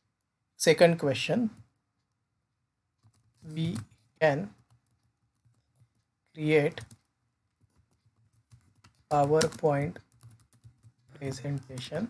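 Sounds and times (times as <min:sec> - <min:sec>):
typing on computer keyboard: 0:02.9 - 0:12.0.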